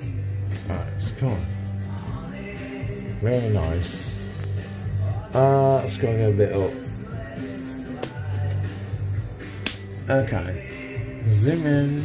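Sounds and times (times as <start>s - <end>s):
background music with low notes: 0.0s - 12.0s
sharp snap: 8.0s - 8.8s, 9.5s - 10.0s.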